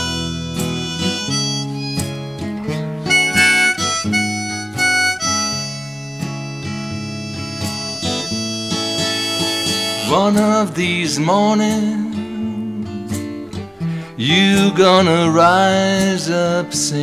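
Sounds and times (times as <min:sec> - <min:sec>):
harmonica solo: 0:00.0 - 0:10.7
strummed acoustic guitar: 0:00.0 - 0:17.0.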